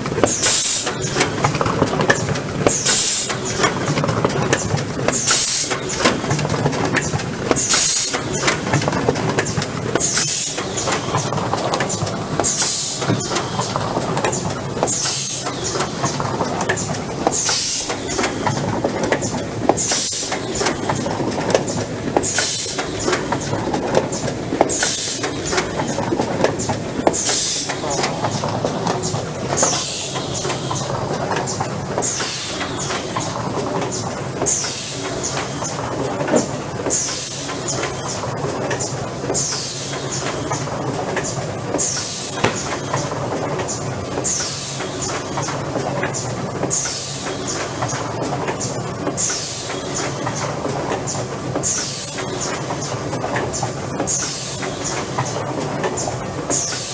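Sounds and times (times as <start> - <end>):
machine clatter: 0.0 - 56.9.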